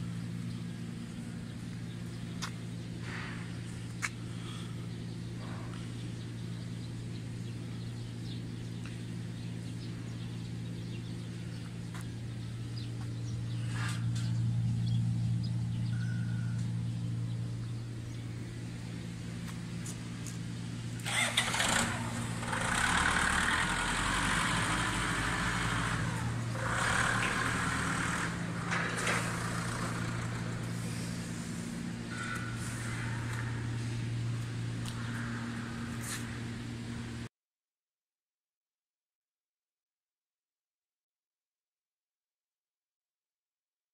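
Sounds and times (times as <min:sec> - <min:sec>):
diesel engine running steadily: 0:00.0 - 0:37.3.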